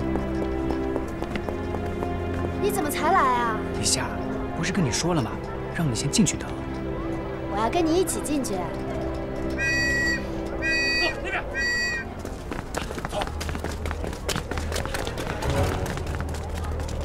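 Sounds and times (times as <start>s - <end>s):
background music: 0.0s - 17.0s
short high whistle blasts: 9.6s - 12.0s.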